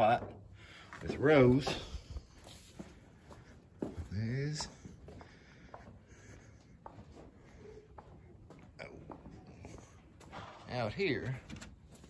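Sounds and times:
footsteps on dirt floor: 0:00.0 - 0:12.0.

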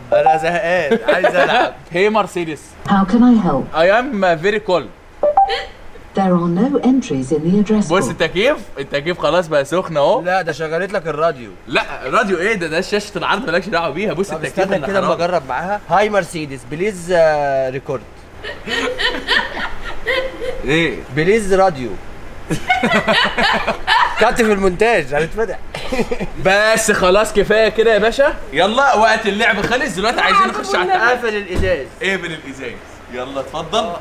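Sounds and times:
people chuckling and laughing: 0:00.9 - 0:01.8, 0:18.4 - 0:20.9, 0:22.5 - 0:24.6, 0:25.7 - 0:26.4
rising two-note electronic chime: 0:05.2 - 0:05.6.

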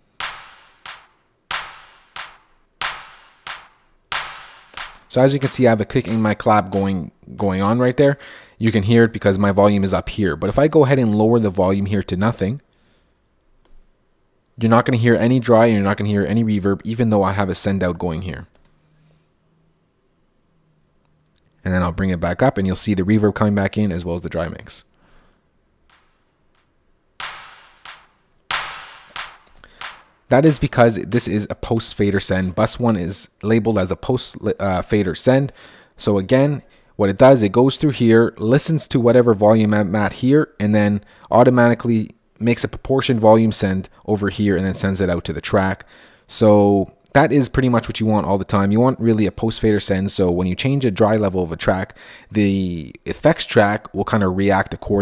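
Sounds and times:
drum machine hand clap with reverb: 0:00.2 - 0:06.9, 0:27.2 - 0:30.1.

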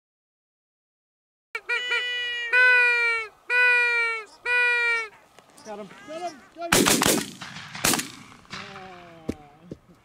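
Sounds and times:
duck call notes: 0:01.6 - 0:07.0.

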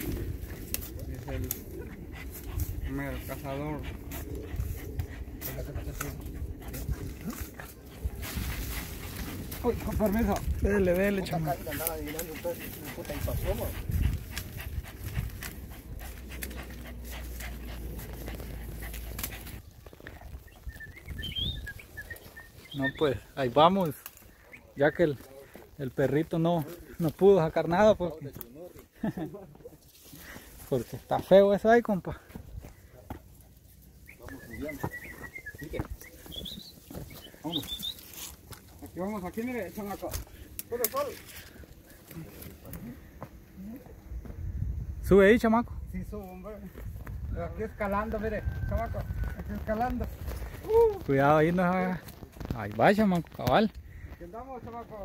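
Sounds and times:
dog panting: 0:00.0 - 0:23.4
rustling in pine needles: 0:00.0 - 0:31.6, 0:32.7 - 0:43.8, 0:46.1 - 0:55.0.

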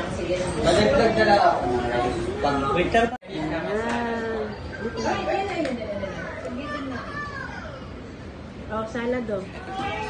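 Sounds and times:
people talking in background: 0:00.0 - 0:10.0
child's voice: 0:06.1 - 0:08.0.

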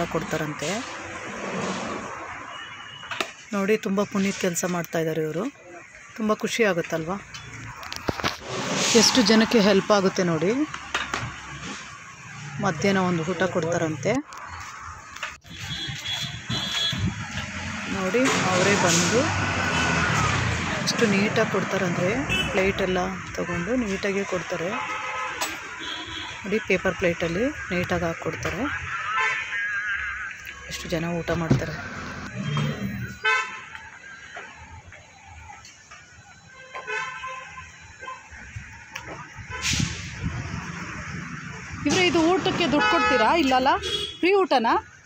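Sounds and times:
faint traffic noise: 0:00.0 - 0:45.0
outdoor background noise: 0:00.0 - 0:45.0
vehicle horns honking: 0:02.4 - 0:03.3, 0:15.4 - 0:17.3, 0:18.2 - 0:20.3, 0:22.1 - 0:22.8, 0:24.6 - 0:26.5, 0:32.3 - 0:33.7, 0:36.6 - 0:38.2, 0:41.9 - 0:44.4.

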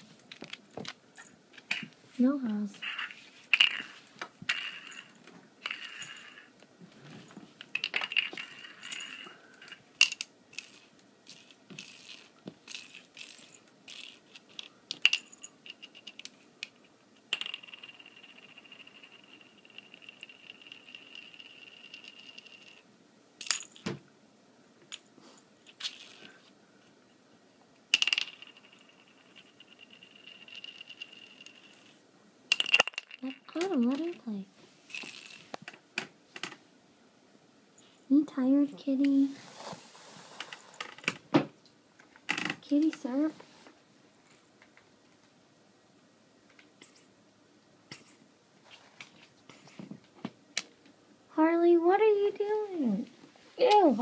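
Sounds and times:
bottle cap clattering on floor: 0:07.8 - 0:14.2, 0:32.5 - 0:33.8.

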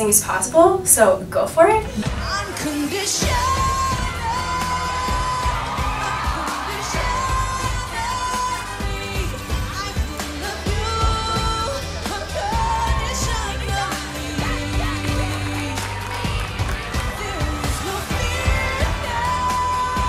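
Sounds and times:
pop music beat: 0:01.9 - 0:20.0.

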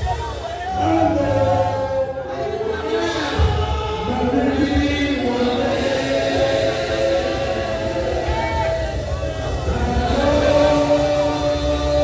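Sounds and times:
crowd singing and wailing: 0:00.0 - 0:12.0.

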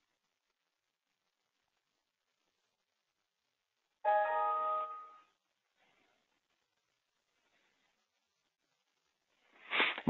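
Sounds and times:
computer notification chime: 0:04.1 - 0:05.2.

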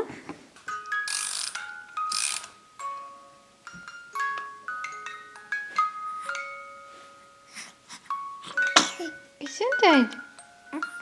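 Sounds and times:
music box lullaby melody: 0:00.6 - 0:11.0.

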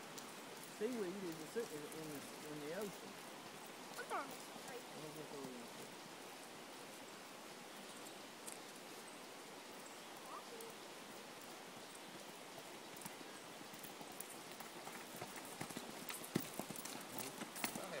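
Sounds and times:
hoof chains jingling: 0:04.0 - 0:04.9, 0:12.9 - 0:18.0
horse hoofbeats on dirt: 0:12.6 - 0:18.0.

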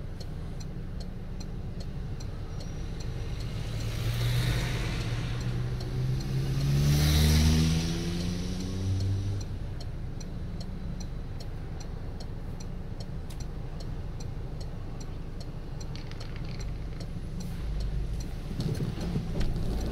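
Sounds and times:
turn indicator ticking: 0:00.0 - 0:19.9
vehicle accelerating past: 0:02.8 - 0:09.4.

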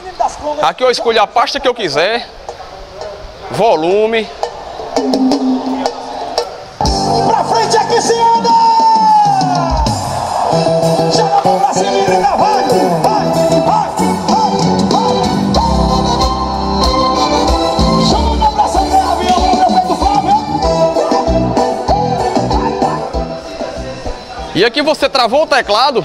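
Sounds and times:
loud music through speakers: 0:05.0 - 0:24.6.

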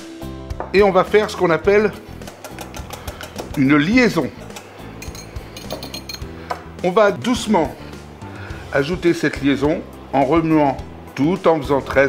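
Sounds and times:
whisk clinking against ceramic bowl: 0:02.2 - 0:06.3.

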